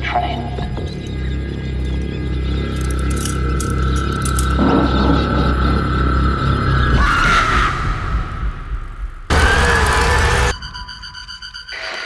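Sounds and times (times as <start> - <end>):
low boom: 4.6 - 9.4.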